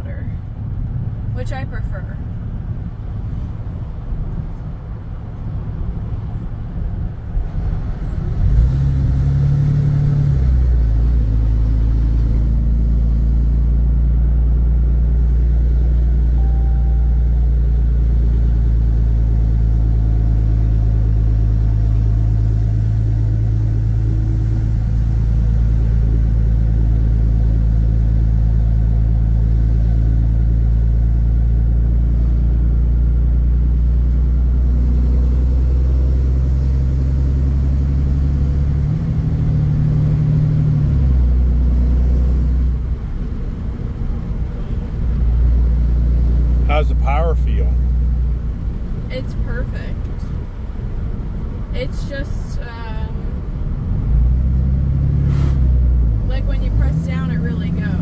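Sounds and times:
diesel truck exhaust drone: 0:00.0 - 0:58.0.

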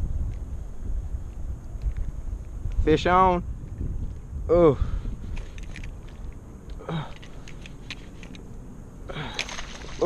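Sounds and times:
wind rumble on microphone: 0:00.0 - 0:10.0
short grunt: 0:09.1 - 0:09.5.

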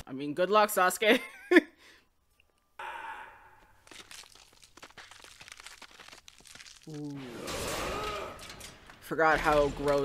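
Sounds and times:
woman sighing: 0:02.8 - 0:03.7.

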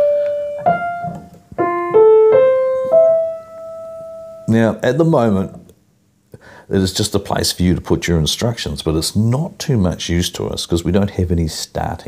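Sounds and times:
piano single notes: 0:00.0 - 0:04.8.

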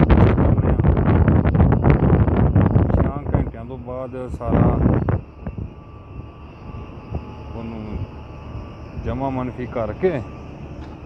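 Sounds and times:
faint thin whine: 0:00.0 - 0:11.0
low machinery drone: 0:00.0 - 0:11.0.

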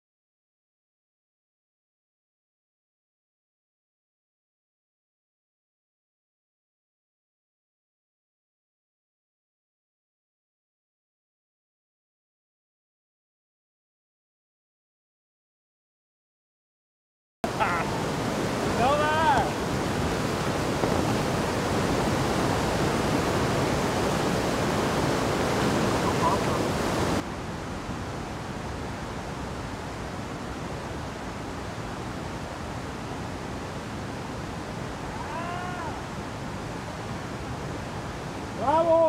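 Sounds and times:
person calling out: 0:17.5 - 0:18.0, 0:35.2 - 0:36.1, 0:38.6 - 0:39.0
whitewater rapids rushing: 0:17.5 - 0:39.0.

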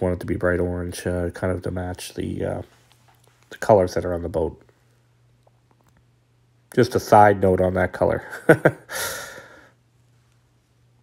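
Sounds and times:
faint low hum: 0:00.0 - 0:11.0
man sighing: 0:08.9 - 0:09.8.

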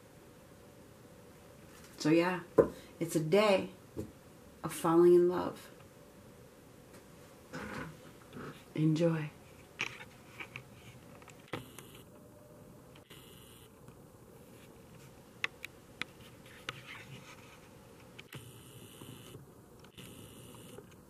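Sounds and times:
hissy camera zoom whirs: 0:11.5 - 0:12.2, 0:13.0 - 0:13.8, 0:18.2 - 0:21.0.

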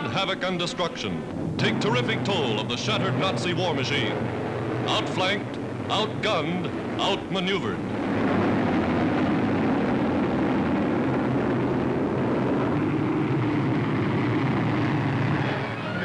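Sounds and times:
bomber aircraft engines droning: 0:00.0 - 0:16.0.

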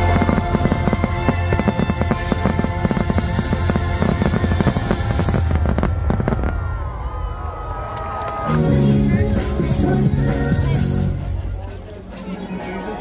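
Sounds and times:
music: 0:00.0 - 0:06.2, 0:08.4 - 0:13.0
fireworks crackling and banging: 0:00.0 - 0:08.6.

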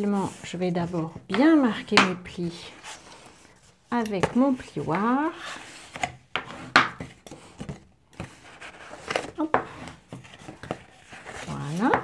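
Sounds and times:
bone folder scraping paper: 0:00.0 - 0:12.0.

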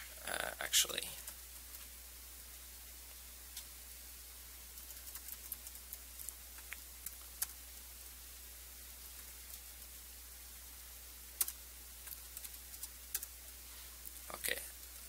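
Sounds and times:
steady low hum: 0:00.0 - 0:15.0
typing on laptop keyboard: 0:04.7 - 0:06.4, 0:07.0 - 0:07.6, 0:11.4 - 0:13.4.

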